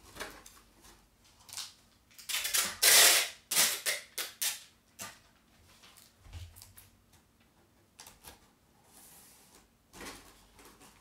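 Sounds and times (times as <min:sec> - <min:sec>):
packing tape ripping off roll: 0:01.5 - 0:04.7.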